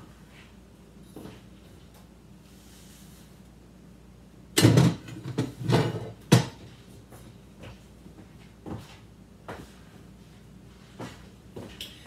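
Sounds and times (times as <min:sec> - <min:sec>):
objects knocking on kitchen counter: 0:04.6 - 0:06.6.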